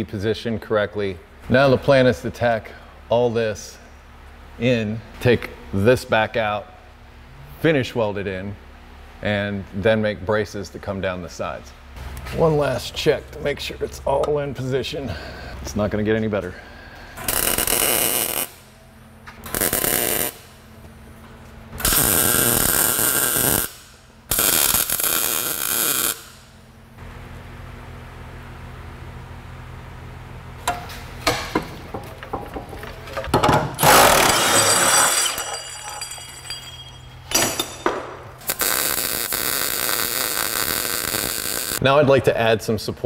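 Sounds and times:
welder crackling bursts: 17.2 - 18.6, 19.4 - 20.5, 21.8 - 26.5, 33.8 - 35.1, 38.4 - 41.8
low steady hum: 26.4 - 38.6.

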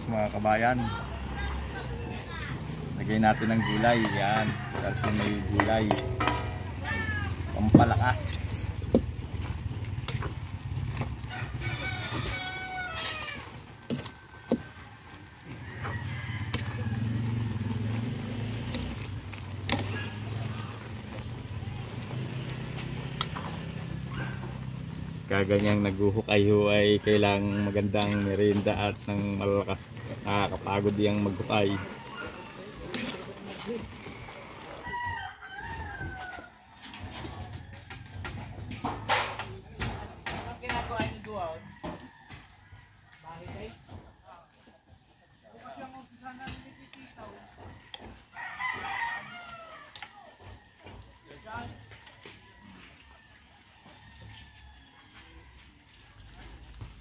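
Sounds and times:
rooster crowing: 0.8 - 8.2, 11.2 - 19.1, 26.7 - 38.4, 41.3 - 43.7, 46.6 - 56.8
metal ladle scraping a wok: 4.0 - 10.4, 12.1 - 14.1, 27.1 - 29.0, 32.3 - 34.8.

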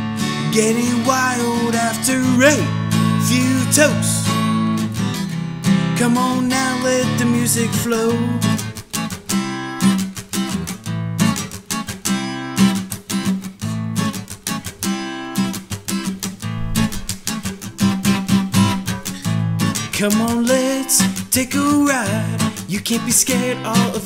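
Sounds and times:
acoustic guitar strumming: 12.1 - 24.0.

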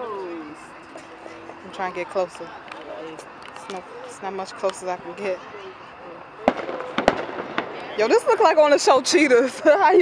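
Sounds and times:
fireworks crackling: 6.3 - 10.0
fireworks bangs: 6.4 - 8.9.

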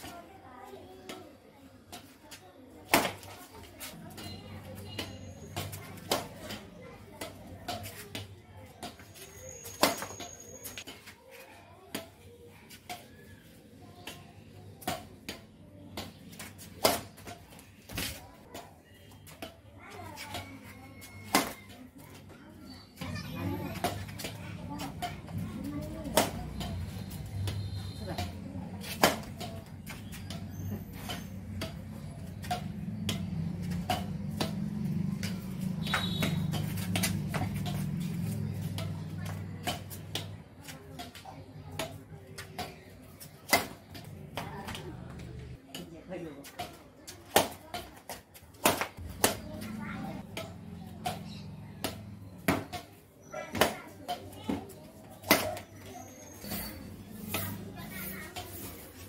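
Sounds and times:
children playing: 0.0 - 59.0
racket hitting shuttlecock: 2.9 - 3.3, 4.9 - 8.2, 20.3 - 21.7, 23.0 - 45.0, 46.5 - 55.7.

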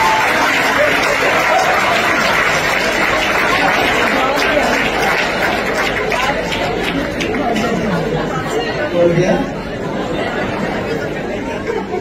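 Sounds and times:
audience chatter in a hall: 0.0 - 12.0.

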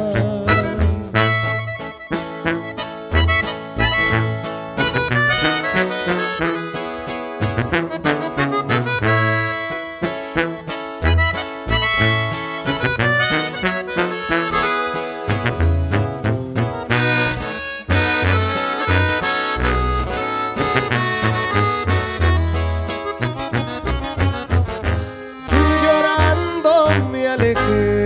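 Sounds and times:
accordion melody: 0.0 - 28.0
pulsing bass line: 0.0 - 28.0
steady beat: 1.4 - 26.8.

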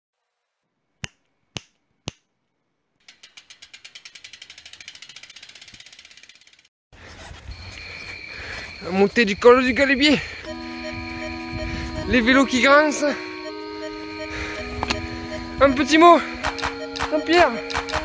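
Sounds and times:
bicycle freewheel ticking: 3.0 - 6.7
road and wind noise: 10.5 - 12.5, 13.5 - 16.5
sharp clicks: 16.4 - 18.0.

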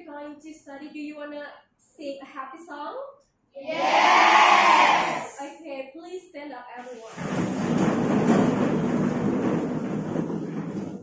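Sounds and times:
chairs and desks scraping on floor: 6.8 - 11.0.

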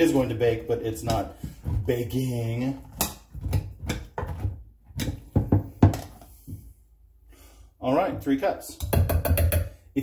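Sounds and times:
measuring cup knocking on saucepan: 8.8 - 9.7.

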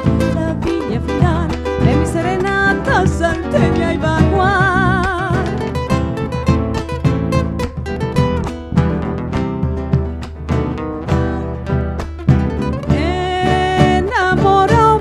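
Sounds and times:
acoustic guitars strumming: 0.0 - 15.0
electric guitar: 0.0 - 15.0
drum beat: 2.9 - 13.2.

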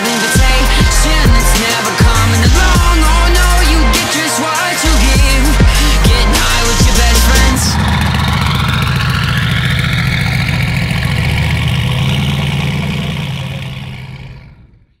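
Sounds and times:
music: 0.0 - 8.6
car engine idling: 0.4 - 15.0.

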